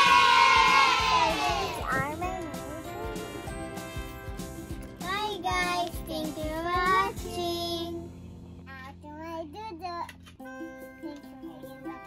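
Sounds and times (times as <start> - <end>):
light background music: 0.0 - 12.0
child singing: 5.0 - 8.0, 8.7 - 12.0.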